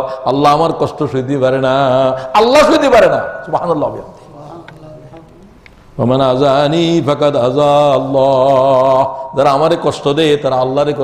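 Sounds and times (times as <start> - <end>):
man chanting melodic recitation: 0.0 - 5.1, 5.9 - 11.0.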